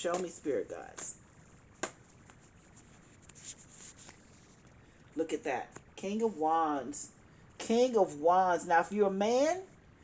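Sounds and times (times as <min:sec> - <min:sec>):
card rustling and scraping: 0:01.8 - 0:04.8.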